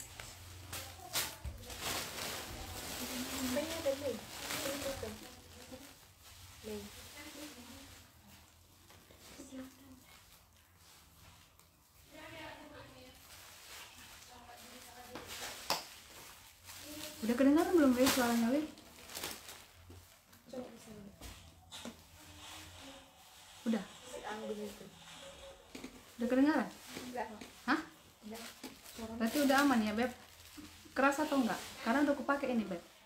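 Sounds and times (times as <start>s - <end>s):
woman speaking: 17.1s - 18.8s, 26.2s - 30.2s, 31.0s - 33.0s.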